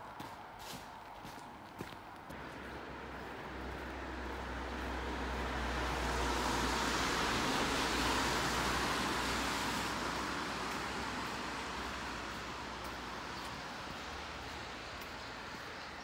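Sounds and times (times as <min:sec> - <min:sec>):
car tyres on wet street: 0:00.0 - 0:16.0.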